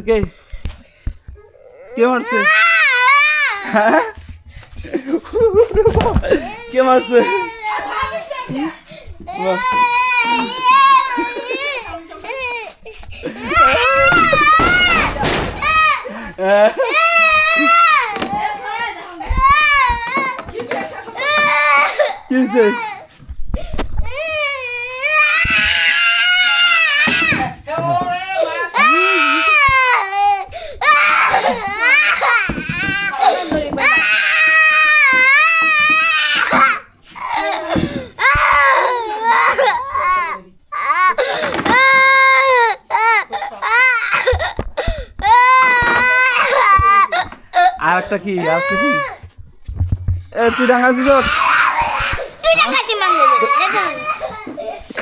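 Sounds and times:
child crying loudly: 0:01.5 - 0:04.0, 0:06.3 - 0:08.5, 0:09.4 - 0:16.1, 0:16.8 - 0:20.4, 0:21.1 - 0:23.1, 0:24.0 - 0:27.6, 0:28.6 - 0:44.6, 0:45.2 - 0:47.8, 0:48.4 - 0:49.2, 0:50.4 - 0:55.0.

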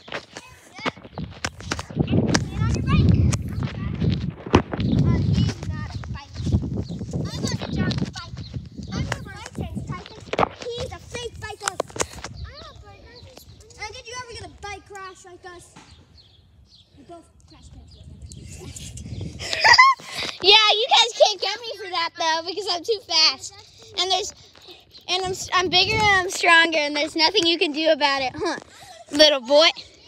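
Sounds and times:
wind rumble on microphone: 0:00.9 - 0:14.8, 0:15.9 - 0:20.5, 0:25.0 - 0:26.6.

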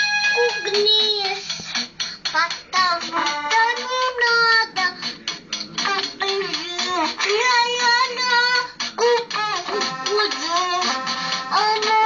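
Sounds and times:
background music: 0:00.0 - 0:12.0
girl singing in a high voice: 0:02.3 - 0:05.0, 0:05.8 - 0:12.0.

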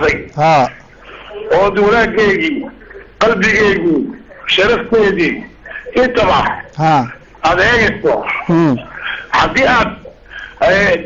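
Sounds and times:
person speaking haltingly: 0:06.8 - 0:07.2.

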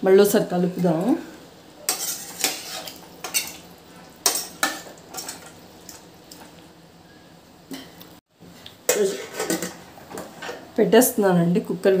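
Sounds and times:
metal ladle scraping a pot: 0:01.8 - 0:03.6, 0:08.9 - 0:09.8.

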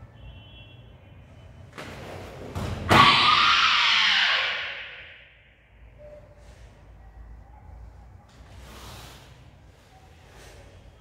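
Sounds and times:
loud kiai shout: 0:02.9 - 0:05.3.

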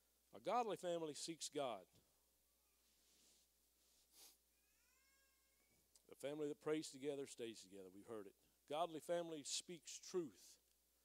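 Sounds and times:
faint sniff: 0:02.9 - 0:04.5.

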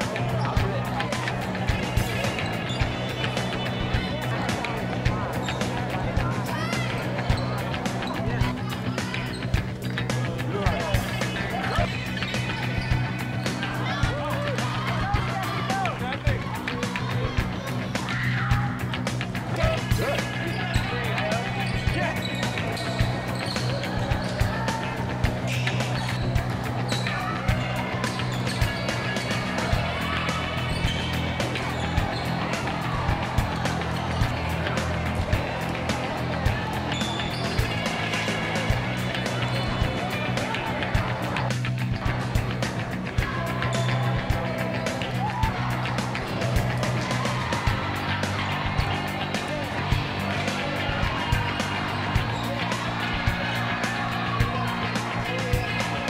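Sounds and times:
crowd voices: 0:00.0 - 0:56.0
music playing: 0:00.0 - 0:56.0
sneaker squeaks: 0:01.9 - 0:04.1, 0:06.7 - 0:09.6, 0:11.2 - 0:13.6, 0:20.1 - 0:24.4, 0:25.5 - 0:29.6, 0:30.5 - 0:32.8, 0:36.8 - 0:38.3.

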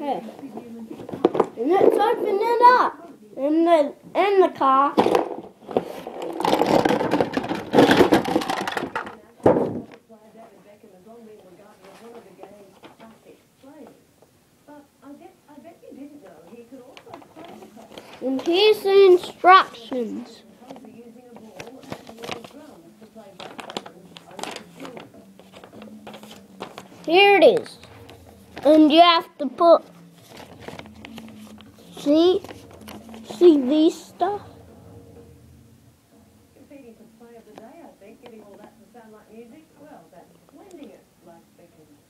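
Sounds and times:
paper and packaging rustling: 0:05.0 - 0:09.8, 0:11.6 - 0:13.2, 0:16.7 - 0:34.6.

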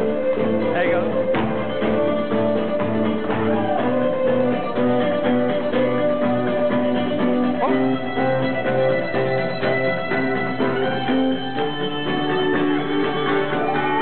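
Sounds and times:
fiddle melody: 0:00.0 - 0:14.0
strummed acoustic guitar: 0:00.0 - 0:14.0.

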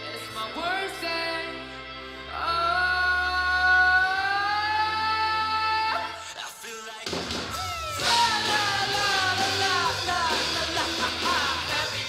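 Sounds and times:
live rock band held high note: 0:07.1 - 0:12.0.

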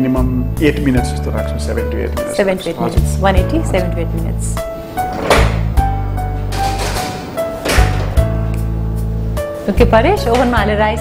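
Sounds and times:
background music with bass notes: 0:00.0 - 0:11.0.

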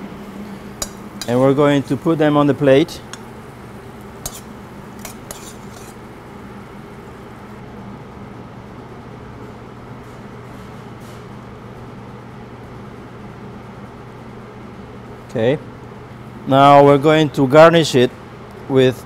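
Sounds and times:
low kitchen hum: 0:00.0 - 0:19.0
utensil clinking on metal bowl: 0:04.3 - 0:06.0.

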